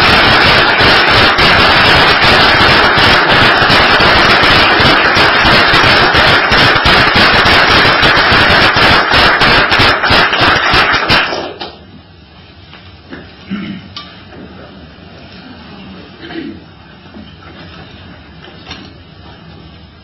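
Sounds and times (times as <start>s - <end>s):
loud dense applause: 0.0s - 11.6s.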